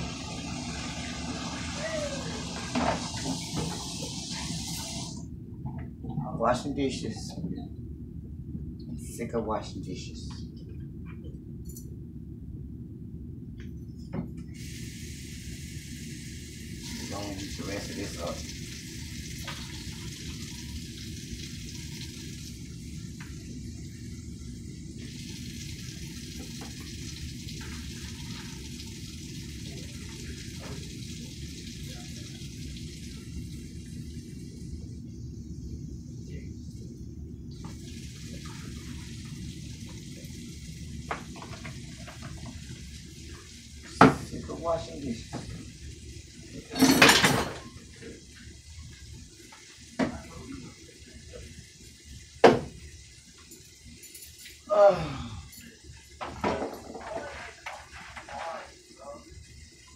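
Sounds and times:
tap water running into sink: 0:00.0 - 0:05.2, 0:16.8 - 0:23.5, 0:25.0 - 0:34.2, 0:37.5 - 0:45.9, 0:52.3 - 0:53.8, 0:56.1 - 0:59.9
dishes clattering in sink: 0:46.7 - 0:47.7, 0:56.2 - 0:58.6.

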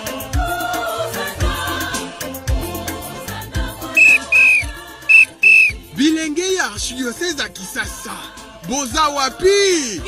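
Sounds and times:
faint background music: 0:00.0 - 0:10.0
whistle blasts: 0:04.0 - 0:05.8.

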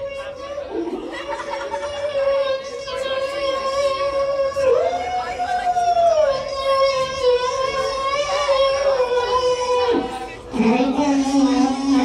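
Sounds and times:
man imitating a synthesizer: 0:00.0 - 0:12.0.

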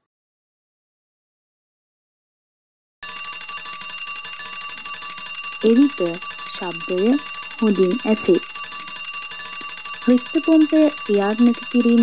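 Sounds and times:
electric bell ringing: 0:03.0 - 0:12.0.

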